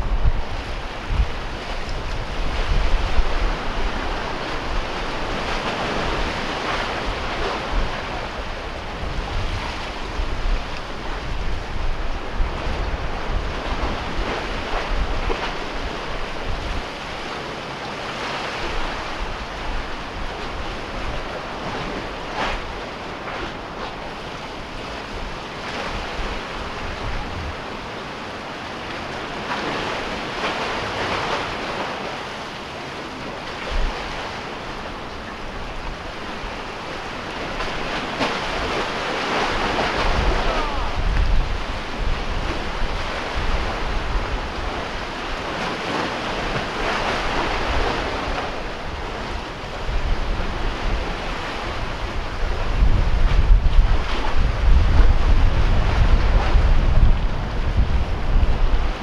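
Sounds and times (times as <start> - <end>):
wind buffeting microphone: 0.0 - 17.5, 18.5 - 28.1, 33.4 - 59.0
waves splashing against concrete: 0.0 - 59.0.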